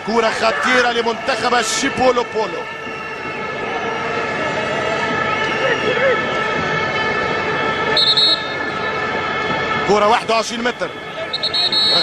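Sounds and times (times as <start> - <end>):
drone of fans' horns: 0.0 - 12.0.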